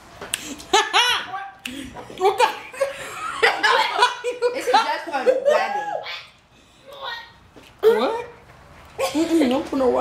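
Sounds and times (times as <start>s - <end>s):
girls and women laughing: 0.5s - 6.3s
women speaking: 3.4s - 8.4s, 9.0s - 10.0s.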